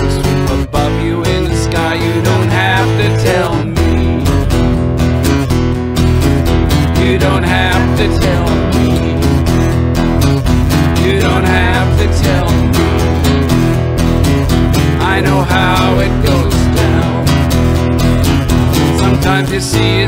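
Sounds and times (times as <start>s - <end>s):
acoustic guitar strumming: 0.0s - 20.0s
electric bass line: 0.0s - 20.0s.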